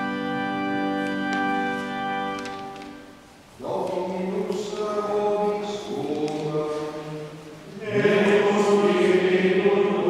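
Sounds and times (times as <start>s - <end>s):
church organ chord: 0.0s - 10.0s
voices singing chant: 3.6s - 10.0s.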